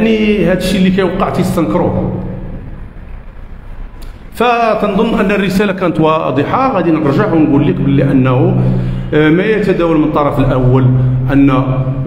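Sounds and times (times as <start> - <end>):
man talking: 0.0 - 2.4, 4.3 - 12.0
low background rumble and hiss: 0.0 - 12.0.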